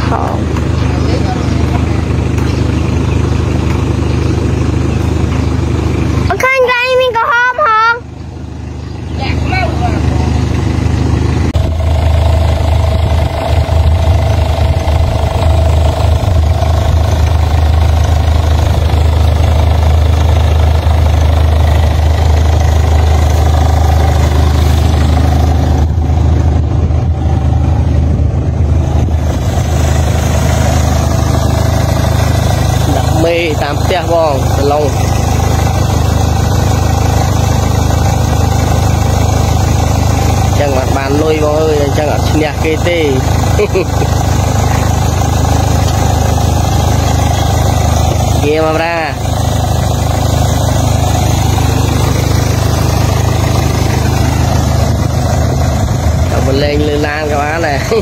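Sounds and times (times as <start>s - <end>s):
truck engine rumbling: 0.0s - 58.0s.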